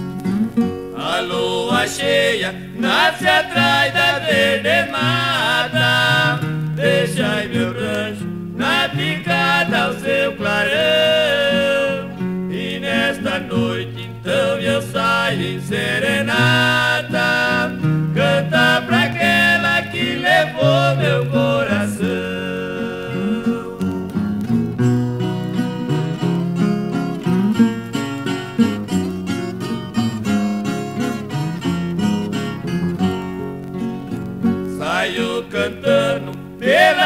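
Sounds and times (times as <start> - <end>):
plucked acoustic guitars: 0.0 - 37.0.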